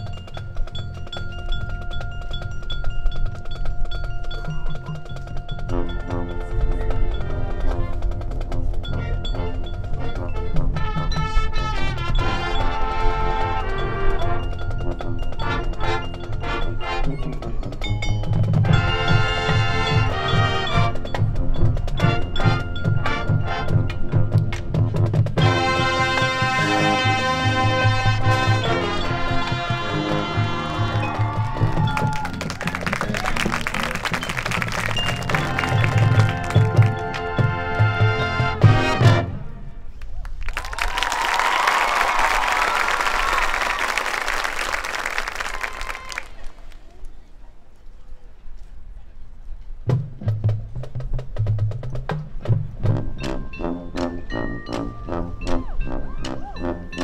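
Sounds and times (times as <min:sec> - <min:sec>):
marching band playing: 0:00.0 - 0:39.9, 0:49.9 - 0:57.0.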